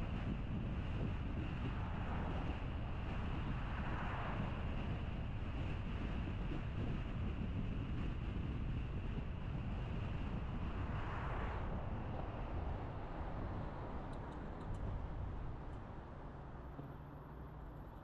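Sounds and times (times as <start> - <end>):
car tyre and wind rumble: 0.0 - 18.0.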